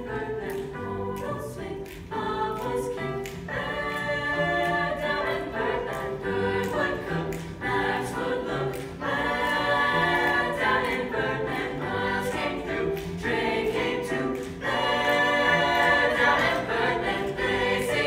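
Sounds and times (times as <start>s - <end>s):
piano accompaniment: 0.0s - 18.0s
youth choir singing: 0.0s - 18.0s.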